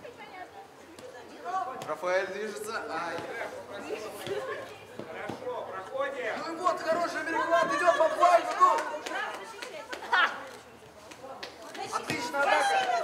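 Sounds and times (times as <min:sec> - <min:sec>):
voices chattering: 0:00.0 - 0:13.0.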